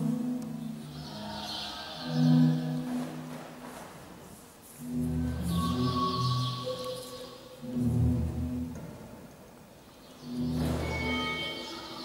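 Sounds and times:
sustained low organ tones: 0.0s - 4.0s, 4.6s - 12.0s.

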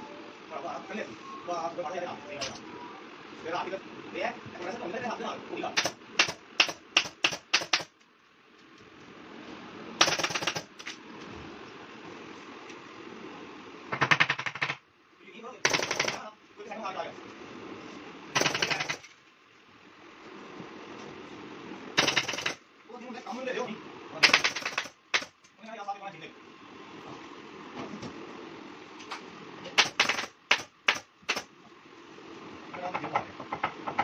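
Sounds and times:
pneumatic staple gun firing: 5.8s - 7.9s, 10.0s - 10.7s, 22.0s - 22.6s, 24.2s - 25.4s, 29.8s - 31.5s.

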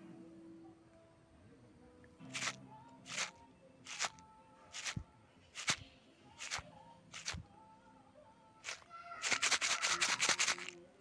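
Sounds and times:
packet crinkling: 2.3s - 5.0s, 5.6s - 5.8s, 6.4s - 7.4s, 8.6s - 10.8s.

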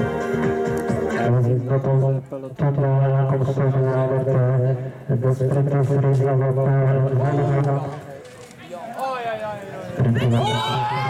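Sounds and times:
background music: 0.0s - 2.2s
man announcing over loudspeaker: 1.2s - 11.0s.

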